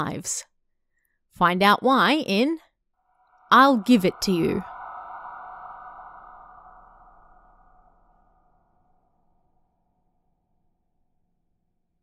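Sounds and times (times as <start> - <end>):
ringing echo tail: 3.0 - 9.0.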